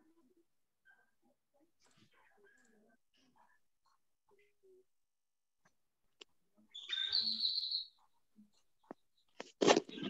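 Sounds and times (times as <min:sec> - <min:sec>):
high bird-like chirping: 0:06.7 - 0:08.1.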